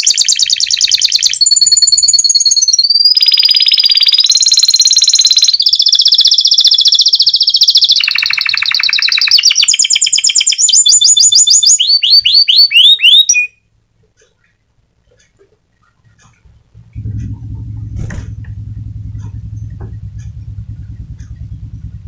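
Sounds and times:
canary singing trills: 0.0 - 18.3.

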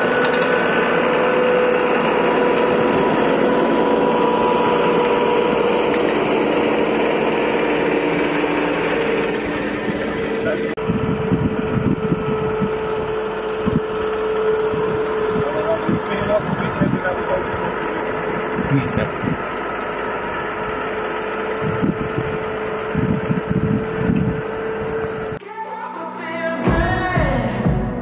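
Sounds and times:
tractor engine running: 0.0 - 25.4
steady whine: 0.0 - 28.0
wind buffeting microphone: 10.8 - 19.5, 21.5 - 25.4.

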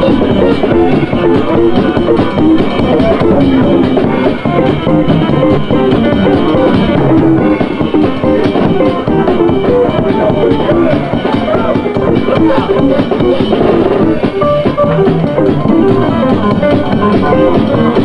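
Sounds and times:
drum kit: 0.0 - 18.0
guitar: 0.0 - 18.0.

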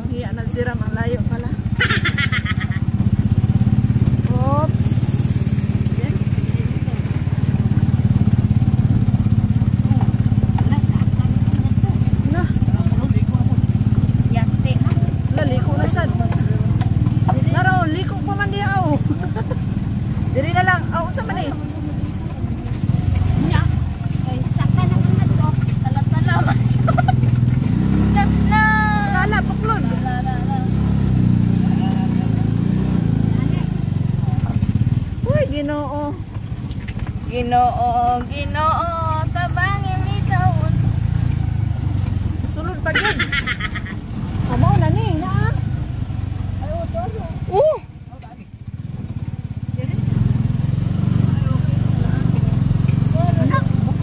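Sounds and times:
vehicle engine running: 0.0 - 54.0
voices calling out: 0.0 - 54.0.

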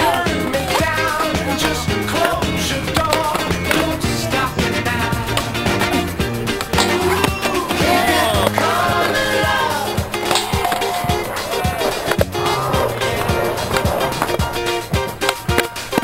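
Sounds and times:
music with steady beat: 0.0 - 16.0
skateboard knocking on ground: 0.0 - 16.0
skateboard wheels rolling on asphalt: 0.0 - 16.0.

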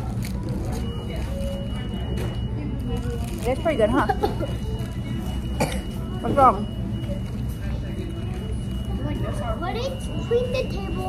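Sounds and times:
faint indistinct voices: 0.0 - 11.0.

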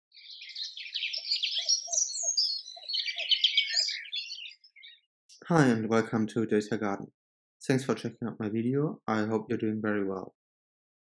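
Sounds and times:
birds chirping and twittering: 0.0 - 5.4.

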